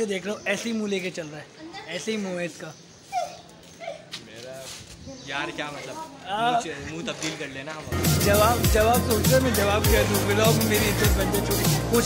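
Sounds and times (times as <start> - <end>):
conversation: 0.0 - 12.0.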